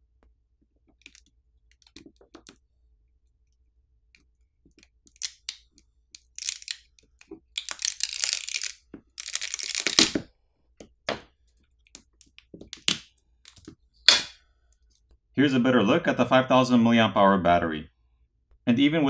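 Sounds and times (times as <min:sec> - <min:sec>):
adhesive crackling and tearing: 0:04.8 - 0:10.2.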